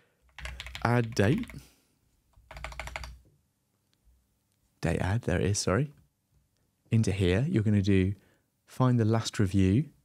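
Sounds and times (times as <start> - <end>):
typing on computer keyboard: 0.3 - 1.6, 2.4 - 3.2.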